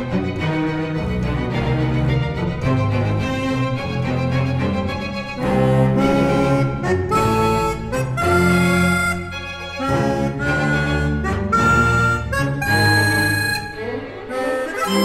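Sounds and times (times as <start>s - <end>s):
chamber orchestra: 0.0s - 15.0s
harmonica: 5.4s - 15.0s.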